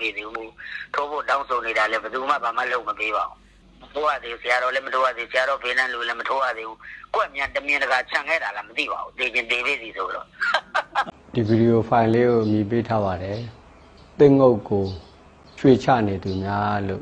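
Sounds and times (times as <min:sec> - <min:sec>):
man talking: 0:00.0 - 0:10.4, 0:11.3 - 0:13.6, 0:14.2 - 0:15.0, 0:15.6 - 0:17.0.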